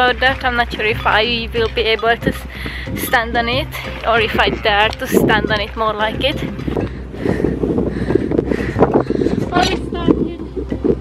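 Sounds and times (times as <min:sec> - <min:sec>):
woman's voice: 0:00.0 - 0:06.6, 0:09.4 - 0:10.5
wind buffeting microphone: 0:00.0 - 0:11.0.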